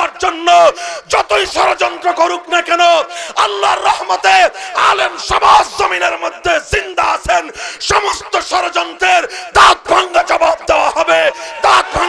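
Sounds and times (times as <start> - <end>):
man shouting into a microphone: 0.0 - 12.0.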